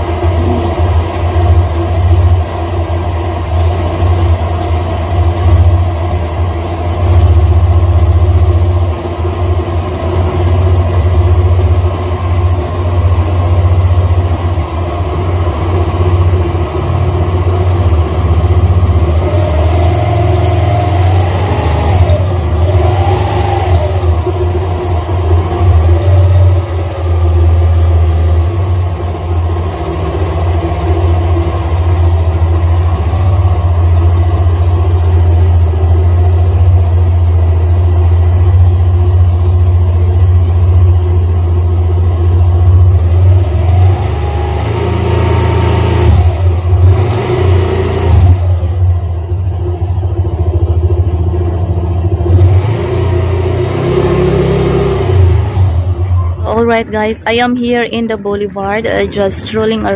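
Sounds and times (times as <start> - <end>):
vehicle engine running: 0.0 - 59.9.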